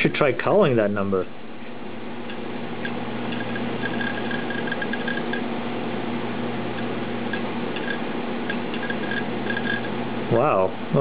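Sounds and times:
steady low hum: 0:00.0 - 0:11.0
hard drive ticking: 0:02.2 - 0:10.1.

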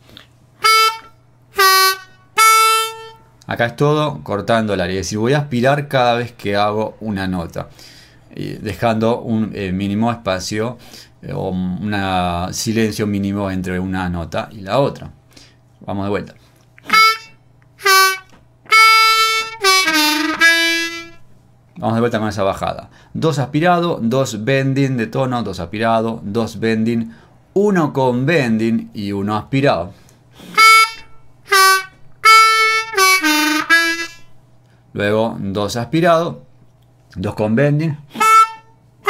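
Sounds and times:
harmonica playing blues: 0:00.6 - 0:03.4, 0:16.8 - 0:21.2, 0:30.4 - 0:34.3, 0:38.1 - 0:38.8.

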